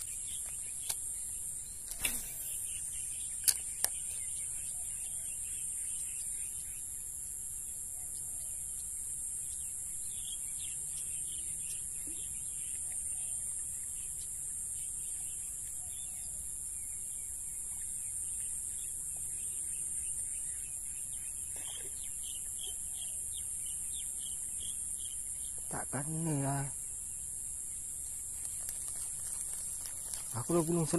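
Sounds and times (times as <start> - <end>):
birds chirping: 0.0 - 30.9
insects chorus: 0.0 - 30.9.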